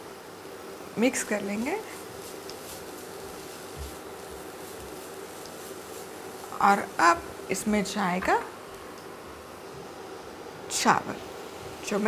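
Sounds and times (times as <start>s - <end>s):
spatula scraping in frying pan: 1.3s - 6.9s.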